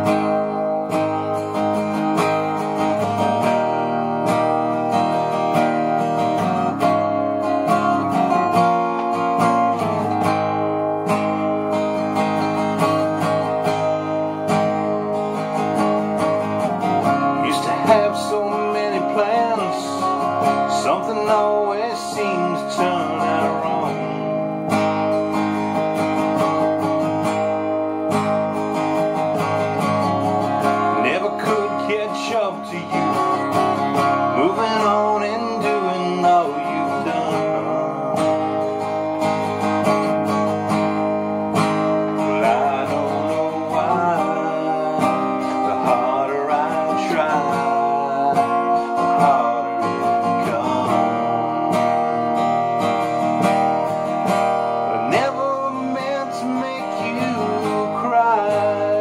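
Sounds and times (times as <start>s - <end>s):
acoustic guitar strumming chords: 0.0s - 59.0s
man singing: 11.0s - 24.7s, 29.8s - 40.8s, 41.6s - 52.5s, 54.7s - 59.0s.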